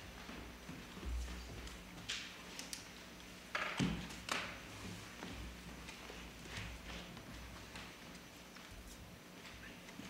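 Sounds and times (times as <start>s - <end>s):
footsteps with heel taps: 0.0s - 2.1s.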